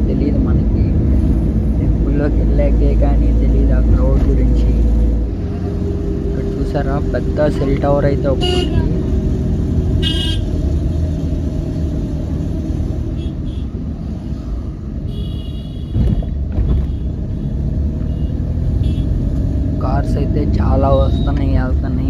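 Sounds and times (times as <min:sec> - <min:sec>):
vehicle engine and road rumble: 0:00.0 - 0:22.0
car horn: 0:08.4 - 0:08.9, 0:10.0 - 0:10.5, 0:13.1 - 0:13.8, 0:15.0 - 0:17.1, 0:18.1 - 0:19.2.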